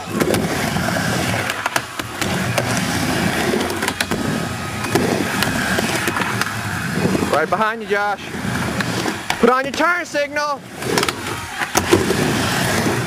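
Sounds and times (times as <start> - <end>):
skateboard wheels rumbling on wood: 0.0 - 13.0
skateboard clacks on ramp: 10.8 - 12.3.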